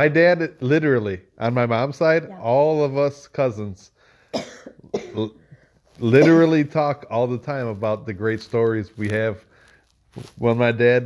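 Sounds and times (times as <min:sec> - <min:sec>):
person coughing: 0:04.3 - 0:05.4, 0:06.0 - 0:06.7.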